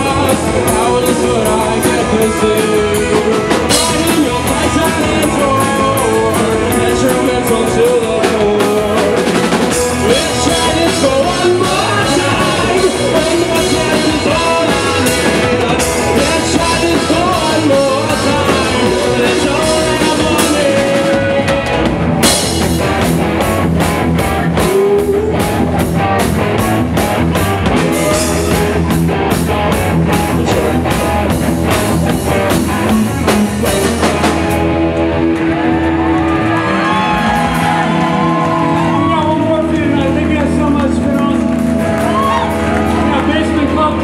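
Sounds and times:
person singing: 0.0s - 22.0s, 24.3s - 25.9s, 27.6s - 29.1s, 30.2s - 31.4s
ringing guitar chords: 0.0s - 44.0s
rock band playing: 0.0s - 44.0s.

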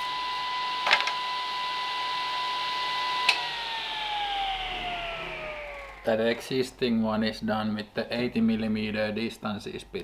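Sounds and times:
table saw whine coasting down: 0.0s - 7.0s.

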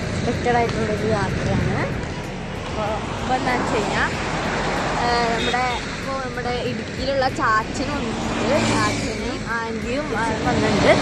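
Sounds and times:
heavy vehicle engine drone: 0.0s - 11.0s
highway traffic passing: 0.0s - 11.0s
young woman talking: 0.2s - 2.0s, 5.0s - 11.0s.

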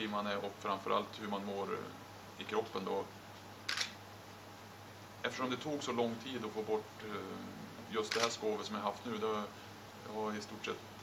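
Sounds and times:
low room hum: 0.0s - 11.0s
camera shutter click: 3.7s - 4.0s, 8.1s - 8.4s.

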